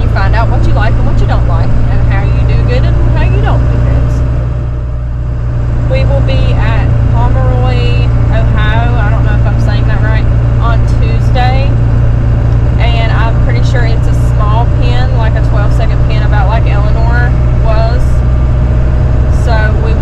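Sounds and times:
road noise: 0:00.0 - 0:20.0
vehicle engine drone: 0:00.0 - 0:20.0.

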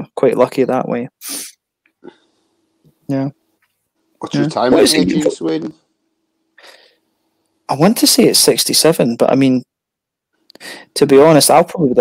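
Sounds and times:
person snorting breath: 0:01.2 - 0:02.3.

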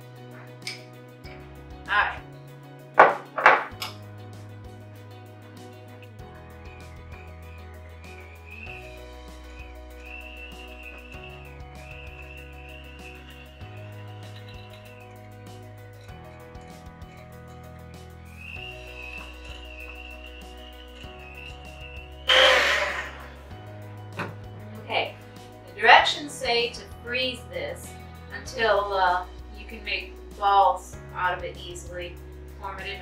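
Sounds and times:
background music with bass line: 0:00.0 - 0:33.0
electric hand mixer whine: 0:21.0 - 0:23.5.

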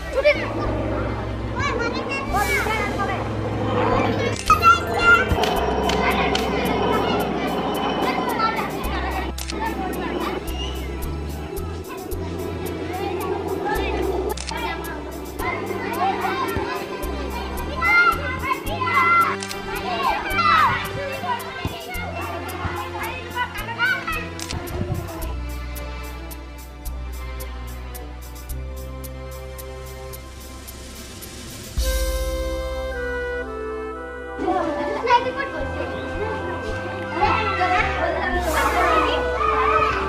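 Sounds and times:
children shouting: 0:00.0 - 0:24.7, 0:34.4 - 0:40.0
background music: 0:00.0 - 0:40.0.

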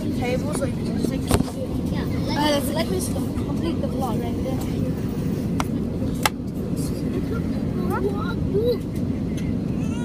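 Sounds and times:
airliner cabin drone: 0:00.0 - 0:10.0.

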